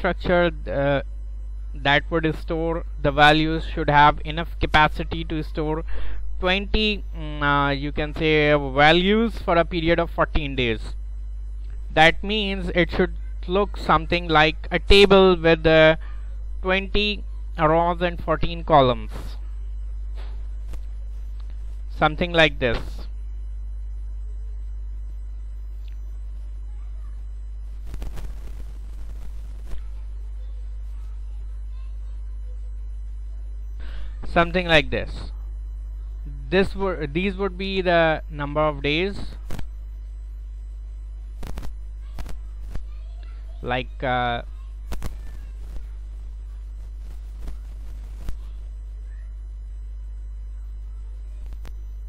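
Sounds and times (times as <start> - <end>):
low electrical mains hum: 0.0 - 52.0.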